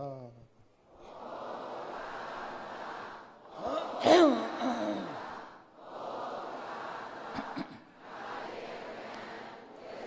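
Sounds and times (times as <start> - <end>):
person chanting long syllable: 3.5 - 5.3.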